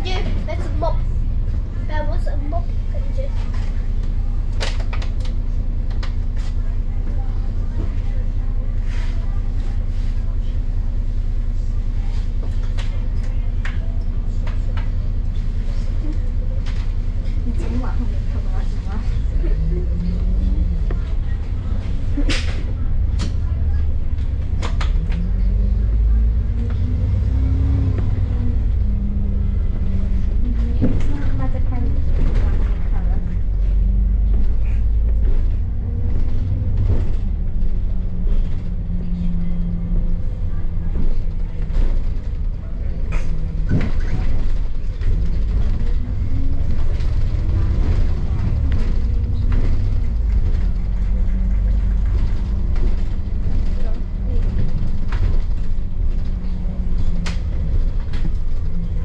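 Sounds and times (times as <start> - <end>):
bus body rattling: 0.0 - 59.0
bus diesel engine droning: 0.0 - 59.0.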